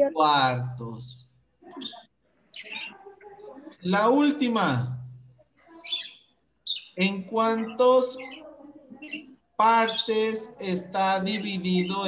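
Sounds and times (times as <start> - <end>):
high bird-like chirps: 1.7 - 3.0, 5.8 - 7.2, 8.0 - 10.4.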